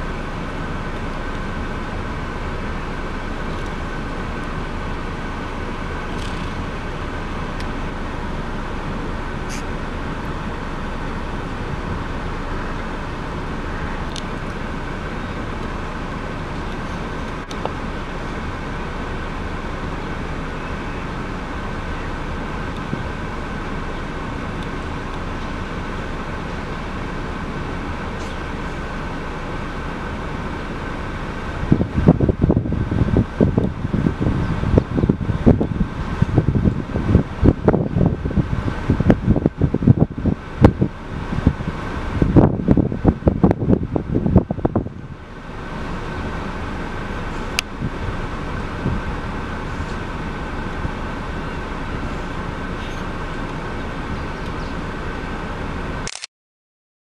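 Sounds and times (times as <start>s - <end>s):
steady mechanical hum: 0.0s - 56.3s
wind gusts buffeting microphone: 31.5s - 45.2s, 47.4s - 51.2s.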